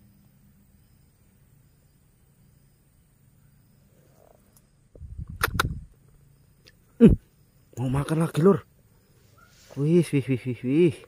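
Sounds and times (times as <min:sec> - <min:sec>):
sharp clicks: 0:05.3 - 0:05.8.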